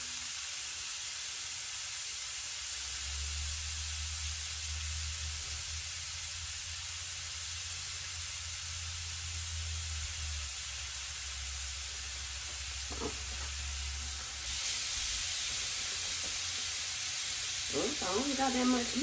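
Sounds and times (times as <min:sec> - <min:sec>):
meat sizzling on a griddle: 0:00.0 - 0:19.0.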